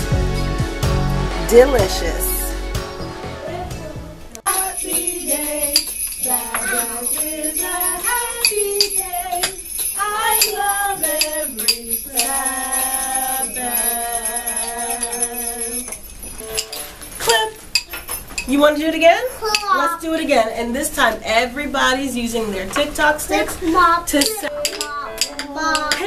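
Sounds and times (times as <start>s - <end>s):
person singing children's song: 3.5s - 17.5s, 22.8s - 26.0s
jingle bells shaking: 4.5s - 18.5s.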